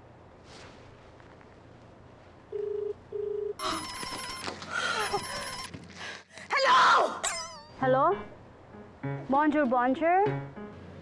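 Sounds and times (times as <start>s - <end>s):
telephone ringing: 2.5s - 5.8s.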